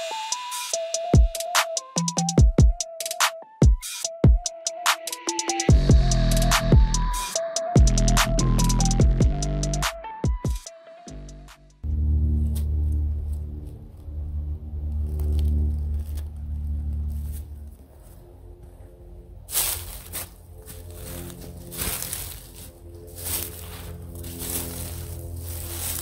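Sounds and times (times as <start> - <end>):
music with deep bass line: 0.0 - 17.8
footsteps crunching dry leaves: 15.0 - 18.7, 19.5 - 26.0.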